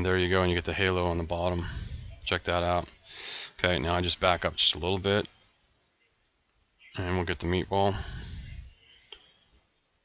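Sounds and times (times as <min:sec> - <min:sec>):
man exhaling: 0:03.1 - 0:03.6
faint click: 0:09.1 - 0:09.4.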